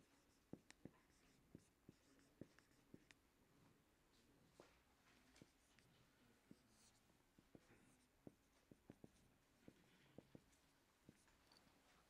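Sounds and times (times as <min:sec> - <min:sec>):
pen scratch: 0:00.1 - 0:03.1
marker tapping on whiteboard: 0:00.5 - 0:03.2, 0:06.5 - 0:11.3.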